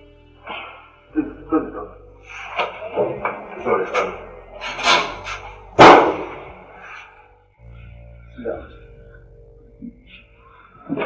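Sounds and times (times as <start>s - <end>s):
steel door banging shut: 2.6s - 6.5s.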